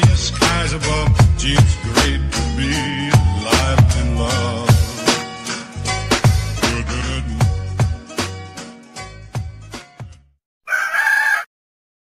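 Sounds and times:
rooster crowing: 10.7 - 11.5.

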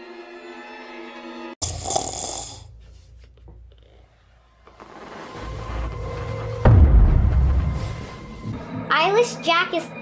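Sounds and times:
man snoring: 1.6 - 2.8
low rumble: 5.1 - 8.7.

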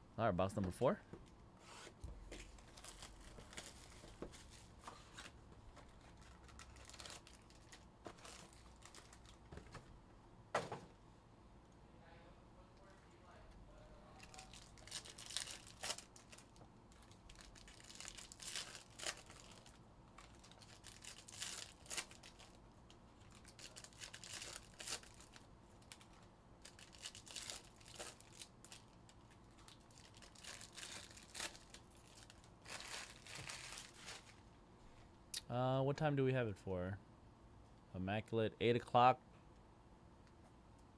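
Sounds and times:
foil wrappers tearing and crinkling: 2.4 - 9.4, 14.2 - 22.6, 23.2 - 34.4.

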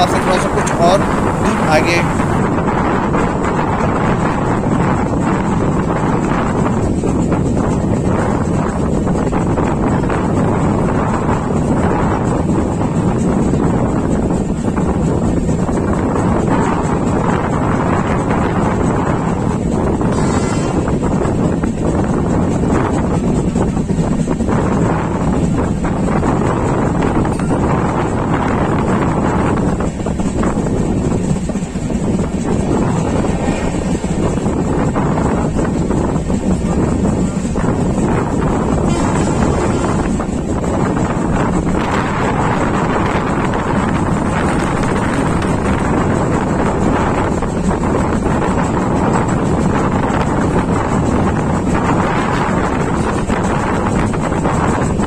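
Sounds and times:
train rumbling on track: 0.0 - 55.0
wind buffeting microphone: 0.0 - 55.0.

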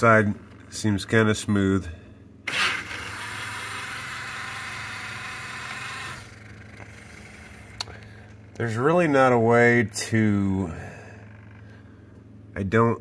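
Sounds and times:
dishwasher lid motor whirring: 2.5 - 7.8.

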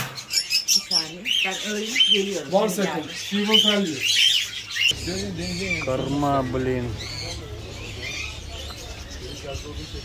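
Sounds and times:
small birds chirping: 0.0 - 10.0
murmur of voices: 4.9 - 10.0.

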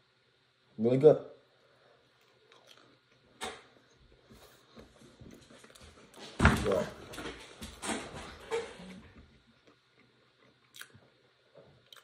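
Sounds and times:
chewing crunchy food: 2.1 - 3.4, 9.4 - 12.0.

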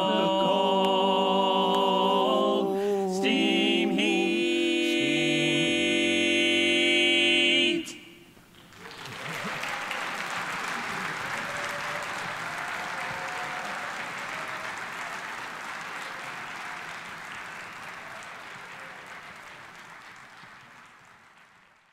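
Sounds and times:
audience applauding: 8.5 - 21.9.

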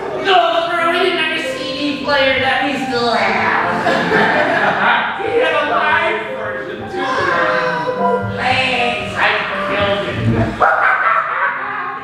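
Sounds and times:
loud wordless vocal cries: 6.8 - 8.1, 10.5 - 12.0.

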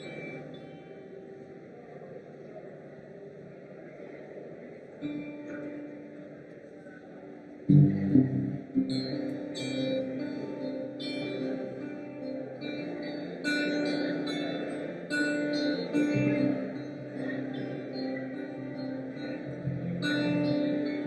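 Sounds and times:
acoustic and electric guitars: 7.6 - 21.0.

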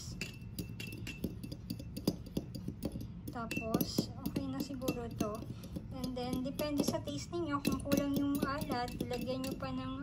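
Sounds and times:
metal spoon clinking against glass bowl: 0.0 - 10.0.

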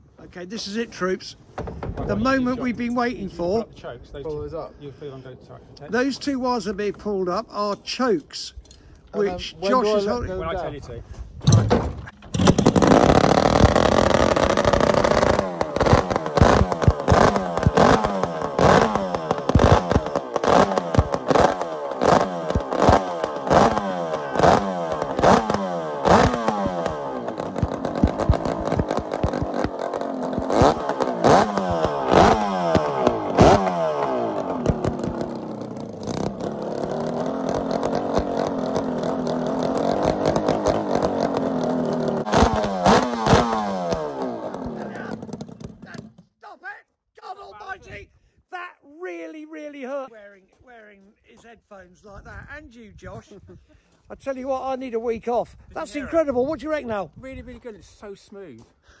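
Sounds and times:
two-stroke engine revving: 12.2 - 46.2.

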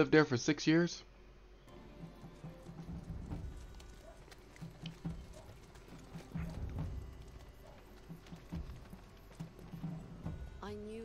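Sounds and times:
horses' hooves clopping: 1.7 - 10.9.

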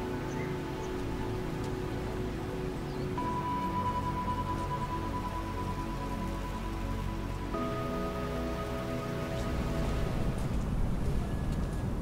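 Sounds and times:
background music of long held notes: 0.0 - 12.0.

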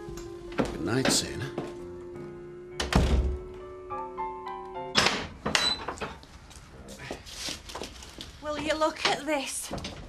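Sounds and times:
soft music: 0.0 - 5.4
door shutting with a thump: 2.8 - 3.5.

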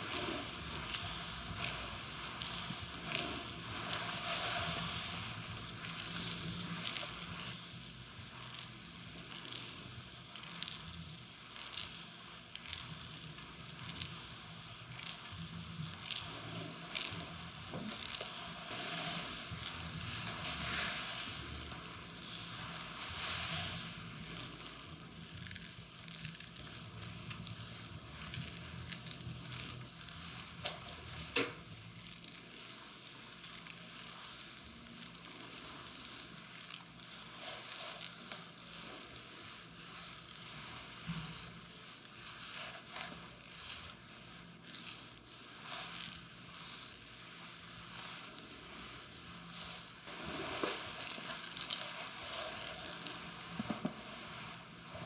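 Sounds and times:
hands rubbing over skin: 0.0 - 7.5, 16.0 - 25.0, 35.3 - 55.0.

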